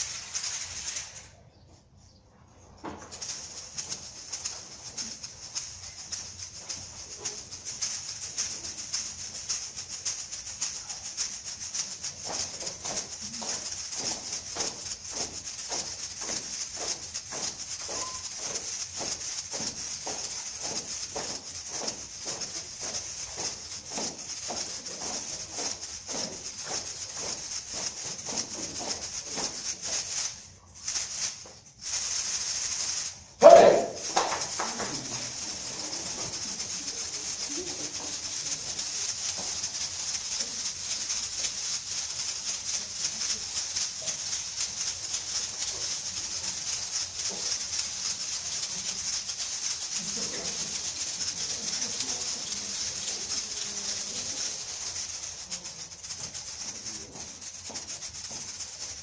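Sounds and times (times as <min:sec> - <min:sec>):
egg shakers shaking: 0:00.0 - 0:59.0.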